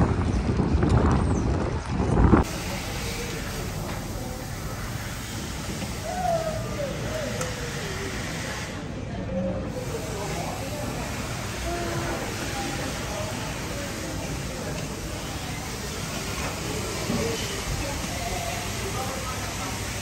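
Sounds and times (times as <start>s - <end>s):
distant indistinct voices: 1.2s - 20.0s.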